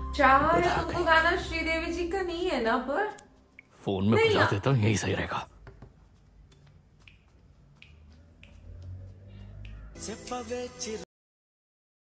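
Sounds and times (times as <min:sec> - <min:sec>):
quiet finger snaps: 0:06.5 - 0:10.0.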